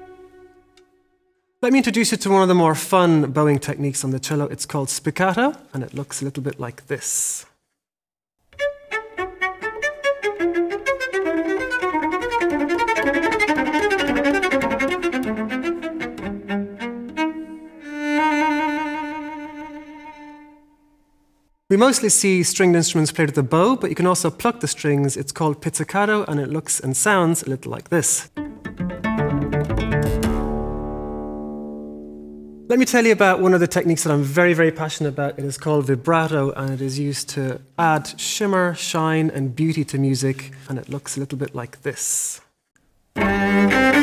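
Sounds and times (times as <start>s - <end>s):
cello playing short detached notes: 0.0s - 1.3s, 8.6s - 21.0s, 28.4s - 32.7s, 43.2s - 44.0s.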